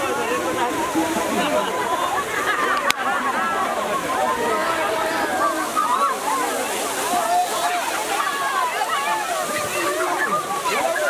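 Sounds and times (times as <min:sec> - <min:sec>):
crowd of excited voices: 0:00.0 - 0:11.0
water jet gushing and splashing: 0:00.0 - 0:11.0.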